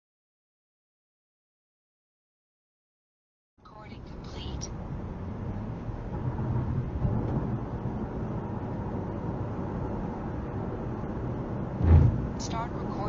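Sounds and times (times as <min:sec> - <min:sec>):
car road and engine rumble: 0:03.6 - 0:13.0
loud low thump: 0:11.8 - 0:12.4.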